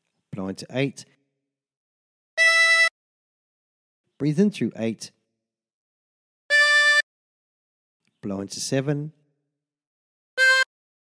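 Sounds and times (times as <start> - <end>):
harmonica note: 2.4 - 2.9, 6.5 - 7.1, 10.4 - 10.7.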